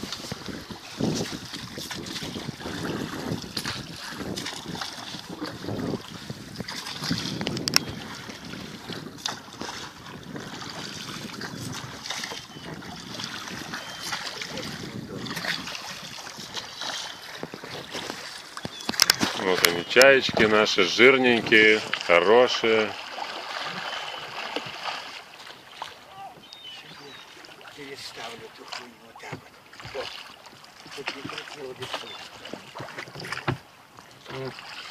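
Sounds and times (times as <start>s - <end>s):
wind on microphone: 0.0s - 22.0s
lapping waves: 0.0s - 34.9s
oars swishing water: 0.0s - 34.9s.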